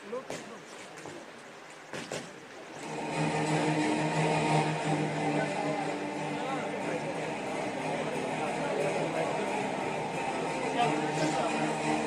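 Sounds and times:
steady droning tone: 2.8 - 12.0.

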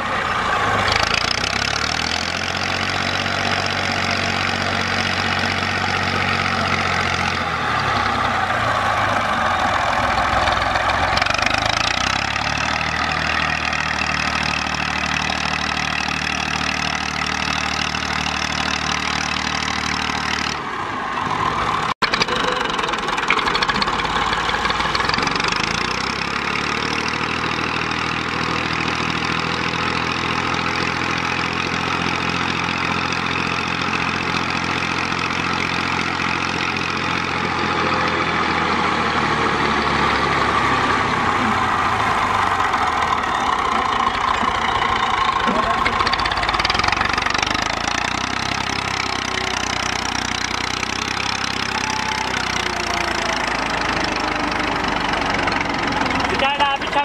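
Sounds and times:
tractor diesel engine under load: 0.0 - 57.0.

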